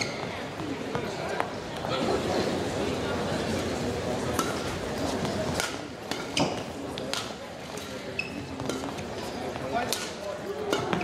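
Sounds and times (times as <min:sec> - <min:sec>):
crowd noise: 0:00.0 - 0:11.0
shuttlecock struck by rackets: 0:05.2 - 0:07.4, 0:09.6 - 0:11.0.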